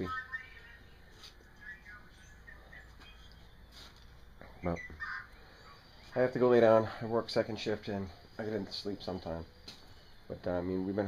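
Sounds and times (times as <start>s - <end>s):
faint bird chirps: 0.4s - 11.0s.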